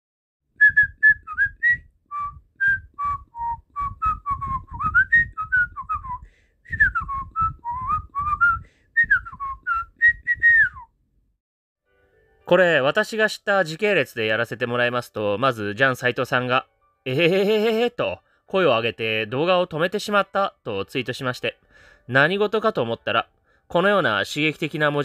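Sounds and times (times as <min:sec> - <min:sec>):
person whistling a tune: 0:00.6 - 0:10.9
breath puffs: 0:08.5 - 0:09.0.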